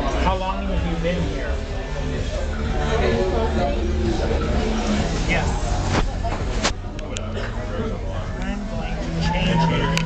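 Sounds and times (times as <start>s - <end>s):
indistinct voices: 0.0s - 10.0s.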